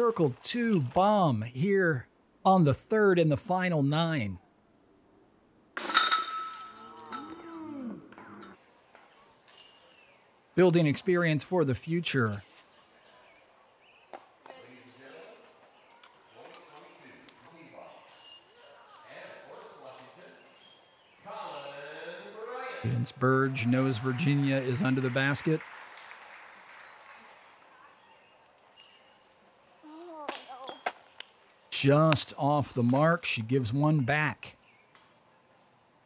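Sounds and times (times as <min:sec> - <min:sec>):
person's voice: 0:00.0 - 0:04.4, 0:22.8 - 0:25.6, 0:31.7 - 0:34.5.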